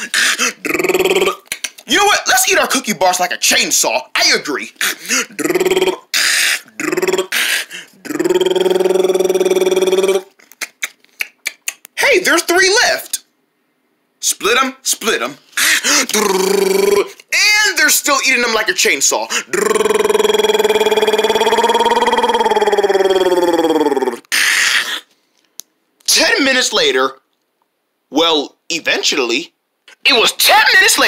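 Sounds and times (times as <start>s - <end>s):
person imitating chainsaw buzz: 4.9s - 10.3s, 16.1s - 17.1s, 19.5s - 24.2s.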